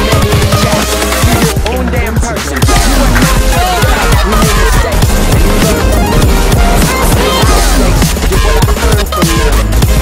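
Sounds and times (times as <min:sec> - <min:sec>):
electronic music with heavy drums: 0:00.0 - 0:10.0.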